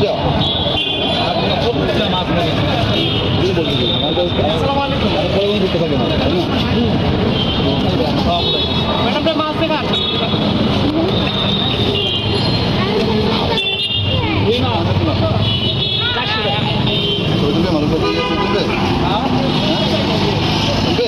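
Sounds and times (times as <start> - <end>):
traffic: 0.0 - 21.0.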